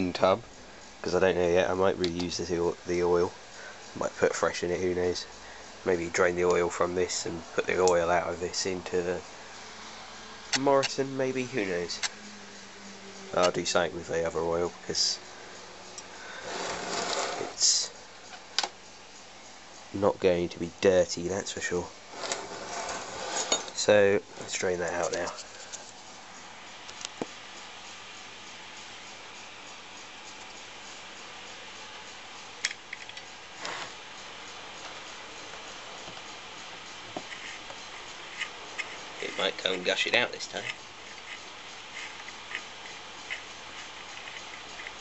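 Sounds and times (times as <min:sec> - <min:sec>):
quiet steady hiss: 0:00.0 - 0:45.0
metal scraping on wood: 0:13.2 - 0:17.9, 0:22.1 - 0:26.0, 0:33.6 - 0:34.0, 0:37.1 - 0:45.0
short scrape: 0:16.3 - 0:17.6, 0:22.1 - 0:23.8.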